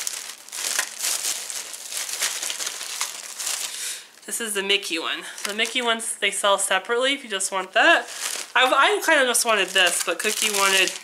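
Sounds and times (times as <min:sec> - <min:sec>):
packaging crinkling and rustling: 0:00.0 - 0:04.2, 0:05.3 - 0:05.9, 0:06.8 - 0:11.0.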